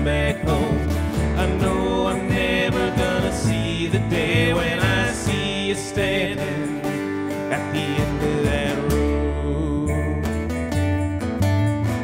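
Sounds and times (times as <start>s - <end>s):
guitars strumming and picking: 0.0s - 12.0s
plucked upright bass: 0.0s - 12.0s.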